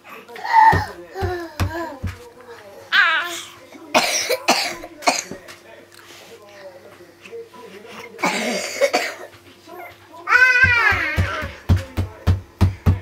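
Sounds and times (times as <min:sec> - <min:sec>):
person coughing: 0:03.9 - 0:05.4, 0:08.2 - 0:09.3.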